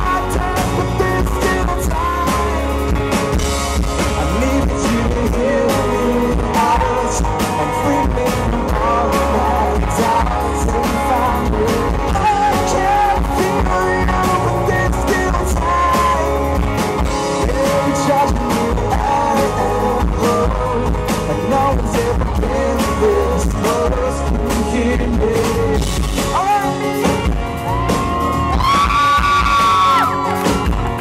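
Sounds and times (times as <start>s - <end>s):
person singing: 0.0s - 2.8s, 3.9s - 30.6s
electric bass: 0.0s - 31.0s
electric guitars: 0.0s - 31.0s.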